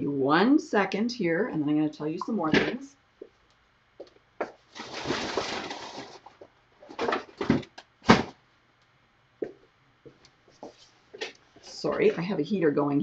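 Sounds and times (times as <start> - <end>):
rustling: 4.4 - 8.4
hard objects knocking and clunking: 6.8 - 8.4.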